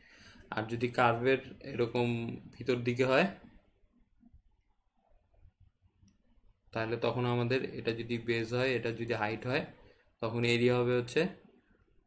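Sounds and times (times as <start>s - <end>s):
man speaking: 0.5s - 3.6s, 6.7s - 11.6s.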